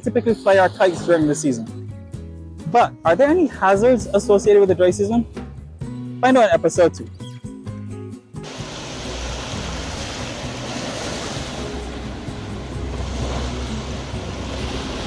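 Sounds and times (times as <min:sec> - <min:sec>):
background music: 0:00.0 - 0:15.0
surf washing onto beach: 0:08.4 - 0:15.0.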